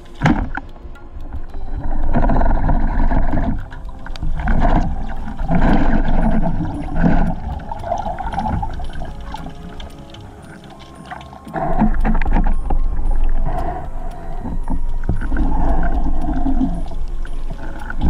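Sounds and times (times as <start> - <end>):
muffled underwater water rushing: 0.0 - 18.0.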